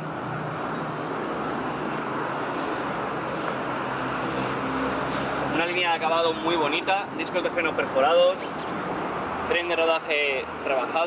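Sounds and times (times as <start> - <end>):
vehicle noise rushing: 0.0 - 11.0.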